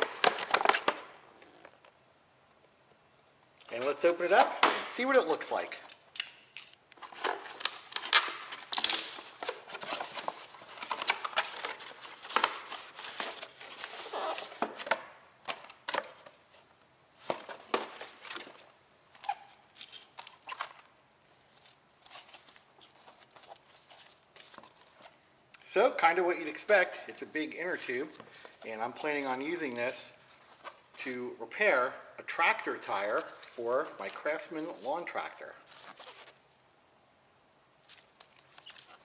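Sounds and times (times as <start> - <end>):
packaging crinkling and tearing: 6.6 - 15.7, 35.6 - 36.4
rubber tube rustling: 6.6 - 25.2, 26.6 - 31.1, 32.3 - 36.5, 37.8 - 39.0.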